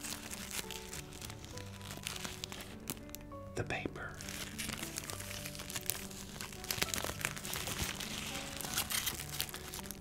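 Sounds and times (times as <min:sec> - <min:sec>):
plastic shrink-wrap crinkling: 0:00.0 - 0:03.4, 0:04.1 - 0:10.0
soft background music: 0:00.0 - 0:10.0.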